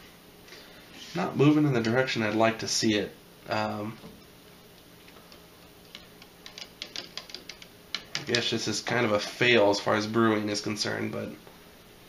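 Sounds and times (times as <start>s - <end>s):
probe tapping against cup: 5.3s - 8.4s.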